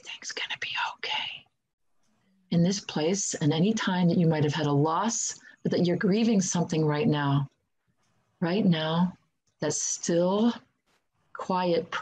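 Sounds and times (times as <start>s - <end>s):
woman whispering: 0.0s - 1.5s.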